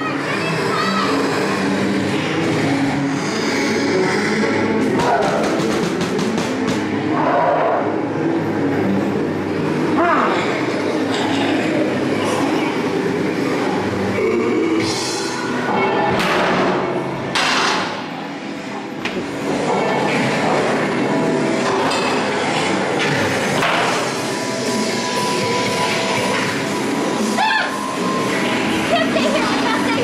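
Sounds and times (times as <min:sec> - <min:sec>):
rumbling industrial din: 0:00.0 - 0:07.2.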